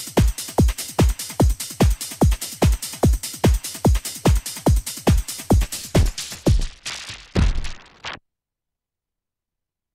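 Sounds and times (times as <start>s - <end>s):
electronic dance music: 0.0s - 8.2s
deep kick drum: 0.6s - 7.9s.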